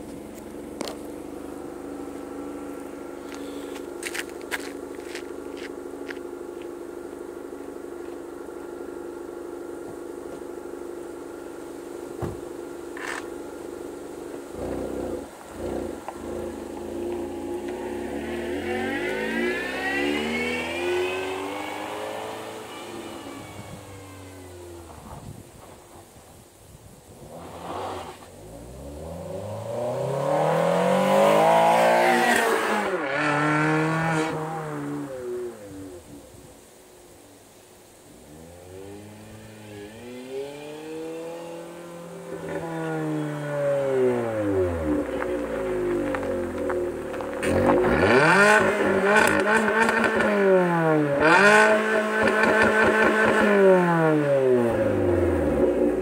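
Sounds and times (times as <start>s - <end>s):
car engine revving past: 14.5s - 24.6s, 27.3s - 35.7s.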